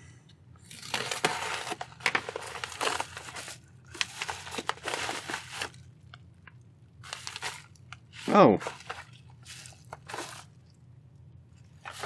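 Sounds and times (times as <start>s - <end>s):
envelope crackling and tearing: 0.7s - 5.9s, 7.0s - 10.6s.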